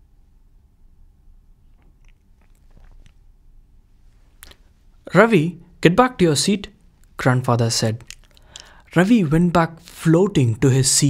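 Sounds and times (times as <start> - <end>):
soft mouth clicks: 1.6 - 3.3, 4.3 - 4.7, 8.0 - 9.0.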